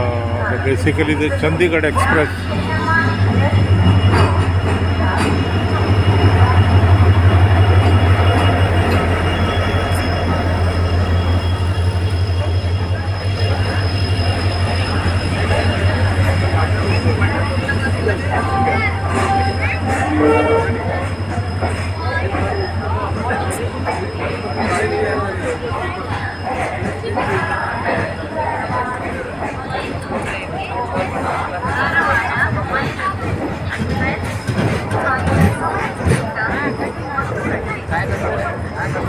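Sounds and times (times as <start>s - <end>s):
diesel locomotive passing: 0.0s - 39.0s
train coaches rumbling on rails: 0.0s - 39.0s.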